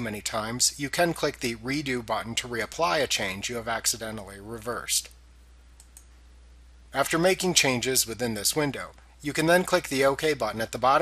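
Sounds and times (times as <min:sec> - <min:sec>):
low electrical hum: 0:00.0 - 0:11.0
computer mouse clicks: 0:05.8 - 0:06.2.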